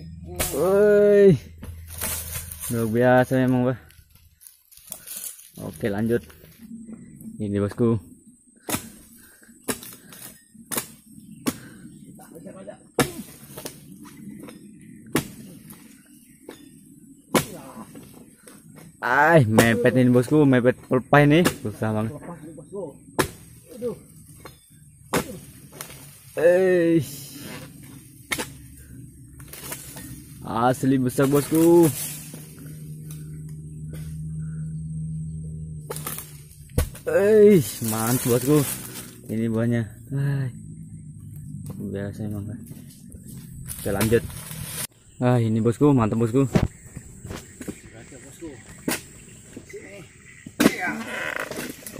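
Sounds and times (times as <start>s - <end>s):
steady low hum: 0.0s - 50.8s
blade chopping palm fronds: 0.3s - 3.6s, 8.6s - 11.8s, 13.0s - 15.9s, 16.5s - 20.6s, 21.2s - 22.2s, 23.1s - 34.3s, 35.8s - 39.5s, 43.6s - 44.9s, 48.7s - 49.2s, 50.5s - 51.9s.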